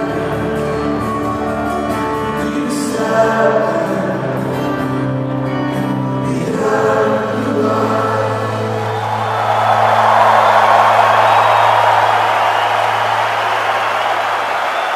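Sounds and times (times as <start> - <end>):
crowd cheering and applause: 8.5 - 14.9.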